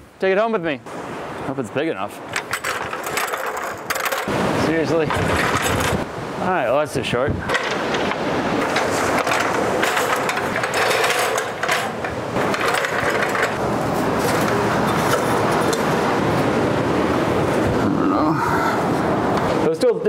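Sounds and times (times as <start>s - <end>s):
surf rushing: 0.9s - 19.8s.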